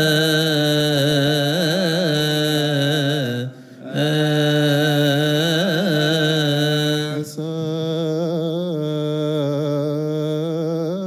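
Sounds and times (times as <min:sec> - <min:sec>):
man singing liturgical chant: 0:00.0 - 0:11.0.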